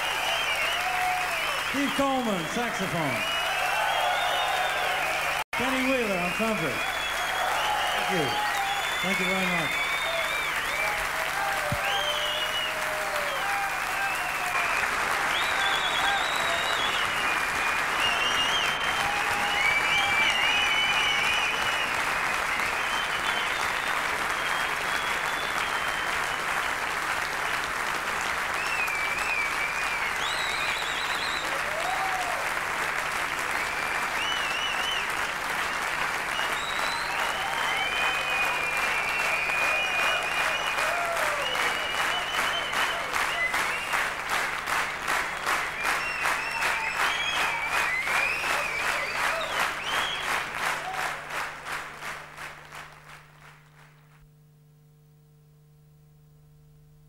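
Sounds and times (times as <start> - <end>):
whistles: 0.0 - 2.2, 3.1 - 5.4, 6.1 - 11.0, 11.7 - 13.5, 14.1 - 26.6, 28.5 - 31.7, 33.5 - 44.1, 45.2 - 50.5
audience applauding: 0.0 - 54.2.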